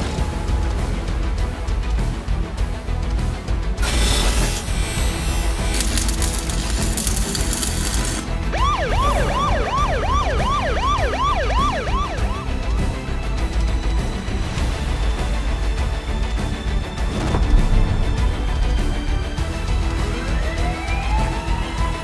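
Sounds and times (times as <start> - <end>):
bass-heavy music: 0.0 - 22.0
arc welding crackle: 3.8 - 8.4
yelping siren: 8.5 - 12.8, 20.2 - 22.0.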